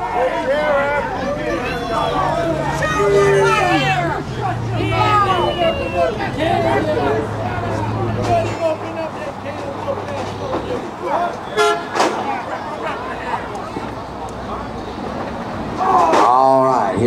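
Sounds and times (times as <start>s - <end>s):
outdoor crowd chatter: 0.0s - 17.0s
high car horn toot: 11.4s - 12.2s.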